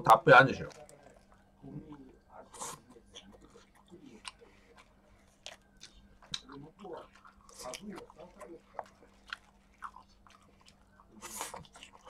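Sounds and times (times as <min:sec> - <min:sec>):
open-mouthed chewing and smacking: 0:00.5 - 0:12.0.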